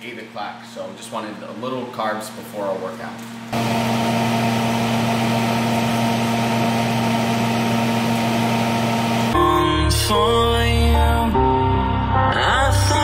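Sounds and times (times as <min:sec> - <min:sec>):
electric appliance humming: 0:03.2 - 0:09.6.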